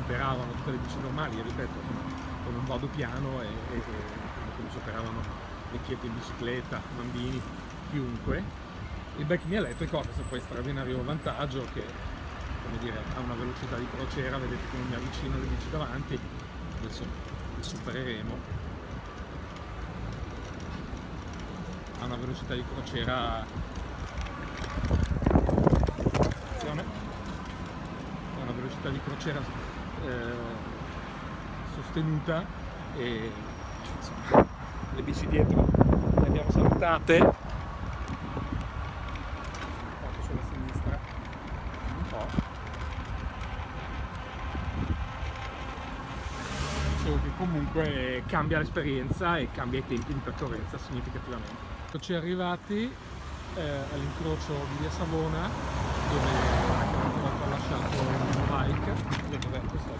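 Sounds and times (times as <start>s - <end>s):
bicycle tyres on asphalt: 0.0s - 59.9s
wind on microphone: 24.4s - 27.2s, 35.2s - 39.2s, 41.7s - 45.4s.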